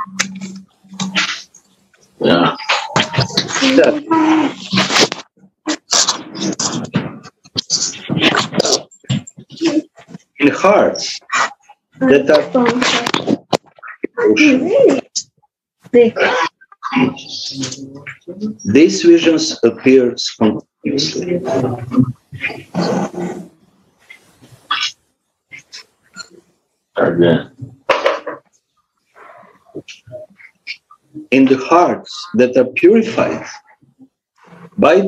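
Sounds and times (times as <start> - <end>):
faint scattered noises: 0.0 - 35.0.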